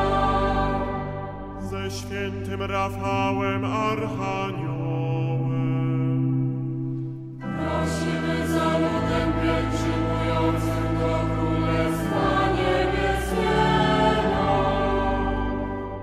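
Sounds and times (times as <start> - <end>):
choir chanting: 0.0 - 5.6, 7.4 - 16.0.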